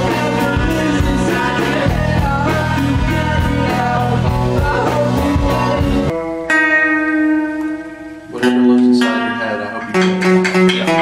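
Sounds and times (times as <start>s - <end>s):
person singing: 0.0s - 6.2s
electric guitar clean chords: 0.0s - 11.0s
live rock band playing: 0.0s - 11.0s.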